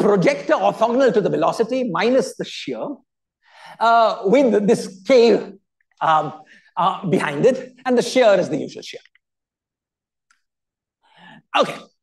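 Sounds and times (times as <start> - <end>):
man speaking: 3.8 - 9.2, 11.5 - 12.0
man breathing in: 11.0 - 11.5.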